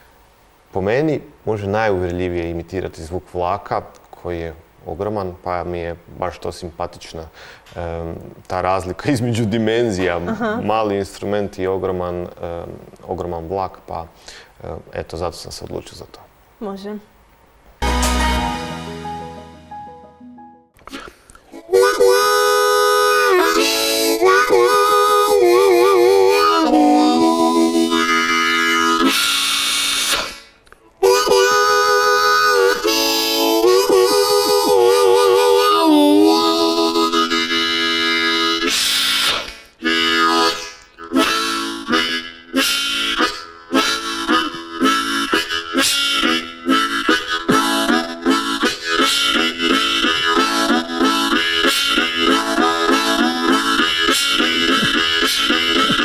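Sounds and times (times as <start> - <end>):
harmonica imitating a train: 20.9 - 56.0.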